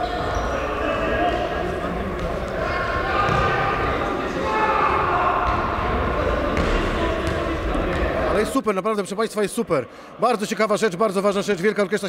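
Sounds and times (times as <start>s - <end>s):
players' voices echoing: 0.0s - 12.0s.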